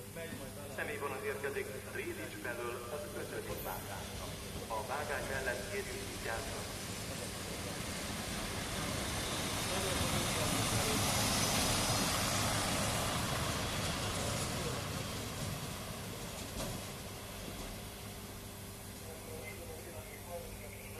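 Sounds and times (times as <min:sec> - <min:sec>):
diesel railcar passing: 0:00.0 - 0:20.9.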